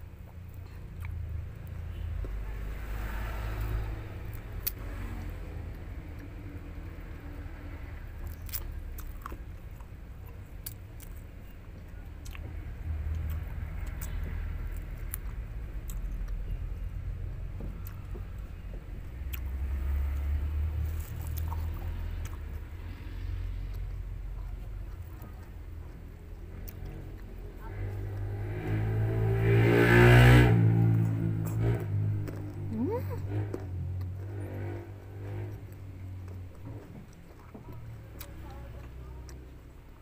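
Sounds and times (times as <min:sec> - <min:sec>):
vehicle passing by: 0:00.6 - 0:40.0.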